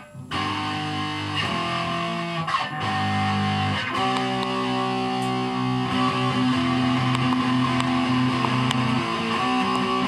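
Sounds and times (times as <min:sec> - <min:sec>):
distorted electric guitar: 0:00.0 - 0:10.0
guitar pick clicks: 0:00.2 - 0:10.0.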